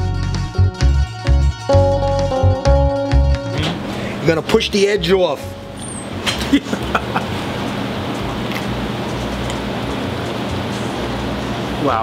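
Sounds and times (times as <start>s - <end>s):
busy kitchen background noise: 5.8s - 12.0s.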